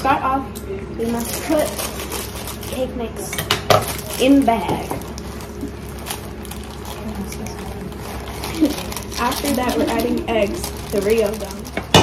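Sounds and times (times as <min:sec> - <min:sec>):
plastic bag rustling: 0:01.0 - 0:03.1, 0:03.7 - 0:12.0.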